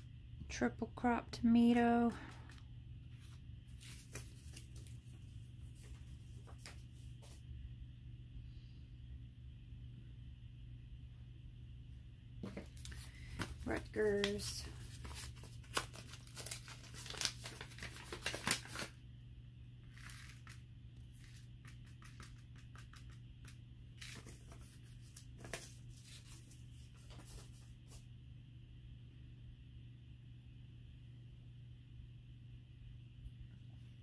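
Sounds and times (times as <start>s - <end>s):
paper seed packet crinkling: 3.2s - 7.4s, 12.4s - 19.0s, 19.8s - 28.0s.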